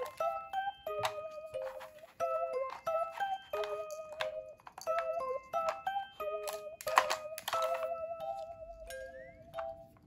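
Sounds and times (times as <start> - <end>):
comic bell-like melody: 0.0 - 10.0.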